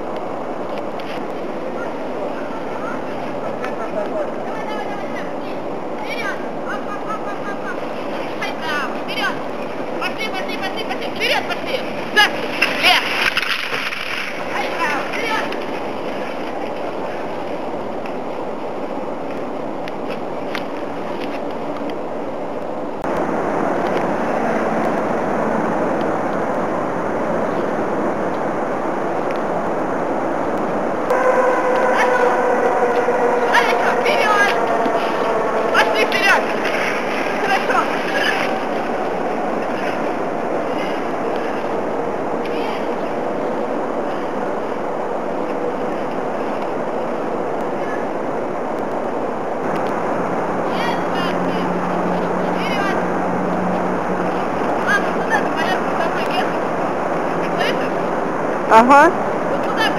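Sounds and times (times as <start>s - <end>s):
rushing movement over snow: 0.0s - 59.9s.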